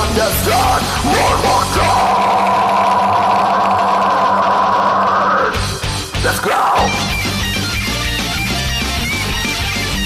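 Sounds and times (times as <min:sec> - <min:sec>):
heavy metal backing track: 0:00.0 - 0:10.0
man screaming long note: 0:00.6 - 0:05.6, 0:06.2 - 0:07.1.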